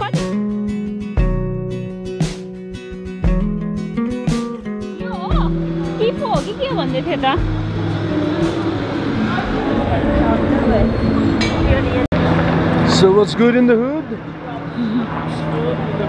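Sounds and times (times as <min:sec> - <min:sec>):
acoustic guitar music: 0:00.0 - 0:12.1
street hum: 0:00.0 - 0:16.0
crowd bustle with voices: 0:05.1 - 0:12.9.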